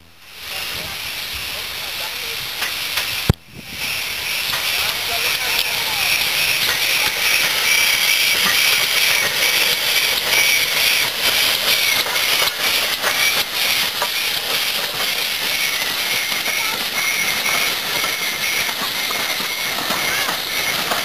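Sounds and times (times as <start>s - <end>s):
steam hissing: 0.0s - 21.0s.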